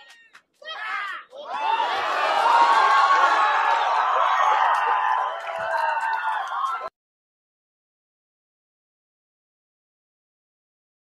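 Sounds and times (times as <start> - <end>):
crowd screaming and cheering: 0.0 - 6.9.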